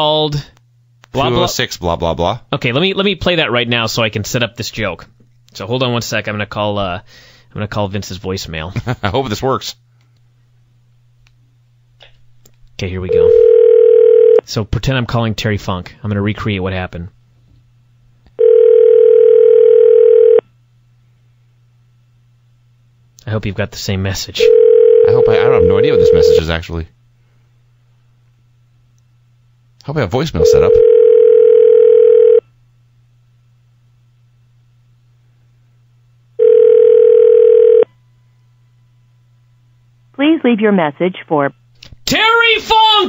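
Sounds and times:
faint low line hum: 0:00.0 - 0:42.0
telephone ringback tone: 0:13.1 - 0:14.4, 0:18.4 - 0:20.4, 0:24.4 - 0:26.4, 0:30.4 - 0:32.4, 0:36.4 - 0:37.9.

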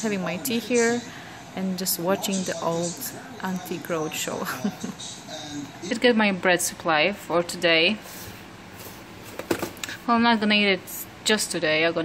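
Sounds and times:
cardboard boxes being handled: 0:08.2 - 0:09.8.

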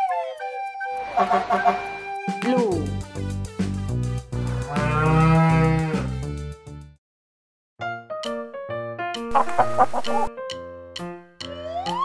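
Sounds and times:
light background music: 0:00.0 - 0:06.8, 0:07.9 - 0:12.0
bull mooing: 0:04.6 - 0:06.2.

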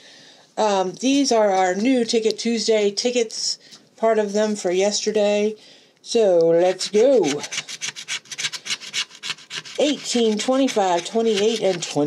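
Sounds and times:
scratching lottery ticket: 0:06.6 - 0:12.0.

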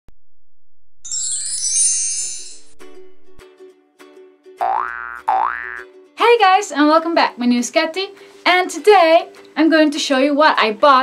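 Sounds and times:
rising sound effects: 0:01.0 - 0:03.5
high sparkling shimmer: 0:01.1 - 0:03.4.

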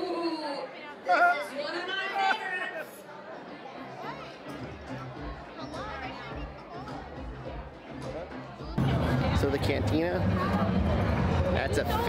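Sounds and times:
voices chattering in a bar: 0:00.0 - 0:12.0.

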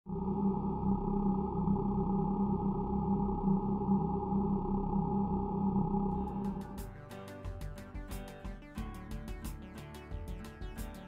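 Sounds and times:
low droning tone: 0:00.0 - 0:07.2.

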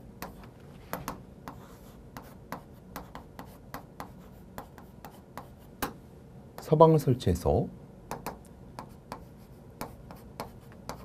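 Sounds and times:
chalk tapping and scratching on board: 0:00.2 - 0:06.0, 0:08.1 - 0:11.0.

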